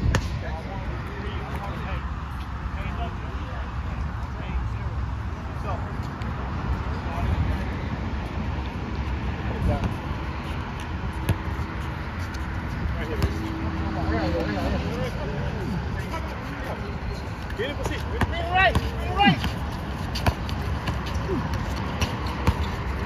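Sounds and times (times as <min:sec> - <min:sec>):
low traffic rumble: 0:00.0 - 0:23.0
players calling and talking: 0:00.0 - 0:23.0
basketball bouncing on court: 0:17.8 - 0:22.9.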